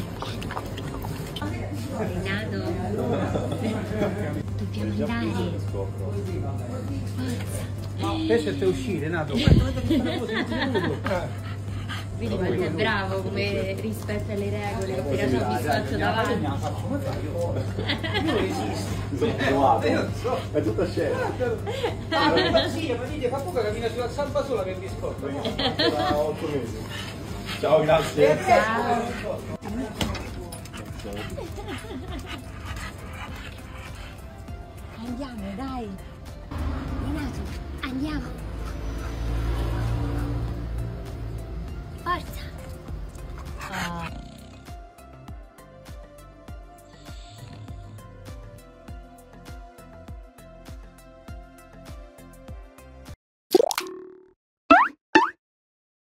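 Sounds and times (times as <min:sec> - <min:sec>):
background music: 0:00.0 - 0:53.2
dog whimpering: 0:43.4 - 0:44.8
cartoon rising plops: 0:53.5 - 0:55.4
cartoon rising swoop: 0:54.7 - 0:55.4.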